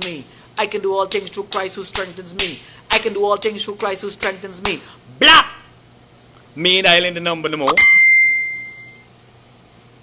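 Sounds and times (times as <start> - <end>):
bright bell-like ding: 7.8 - 9.1.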